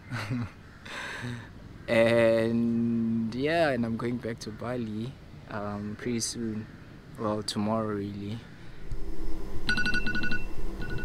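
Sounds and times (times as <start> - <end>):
smartphone alarm tones: 9.7 - 11.0.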